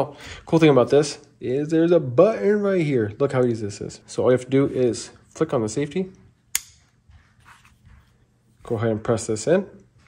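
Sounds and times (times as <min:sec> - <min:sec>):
pistol safety click: 0:06.6 - 0:06.8.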